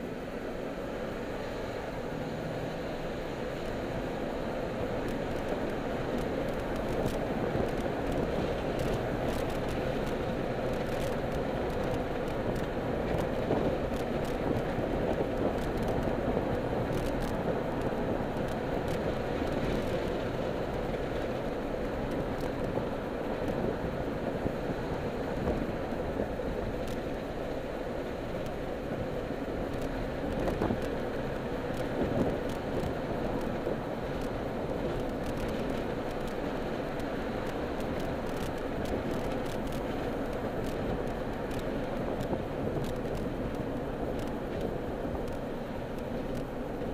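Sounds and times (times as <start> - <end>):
car road and engine noise: 0.0 - 46.9.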